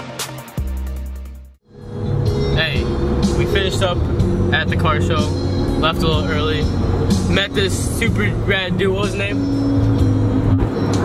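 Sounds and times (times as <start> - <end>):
road and engine rumble in car: 1.7 - 11.0
man talking: 3.4 - 6.7, 7.3 - 9.4.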